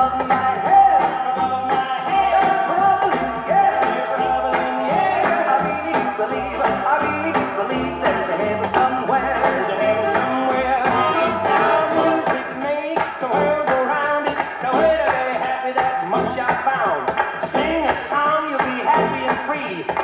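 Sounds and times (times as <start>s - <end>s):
old record music through loudspeakers: 0.0s - 20.0s.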